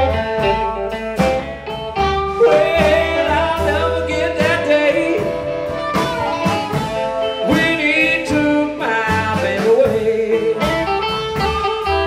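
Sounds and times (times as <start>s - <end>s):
harmonica bending notes: 0.0s - 9.0s
drums: 0.0s - 12.0s
electric guitar: 0.0s - 12.0s
upright bass: 0.0s - 12.0s.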